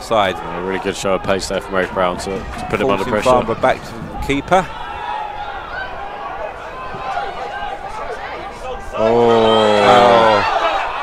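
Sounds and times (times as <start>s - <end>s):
crowd chattering and calling: 0.0s - 11.0s.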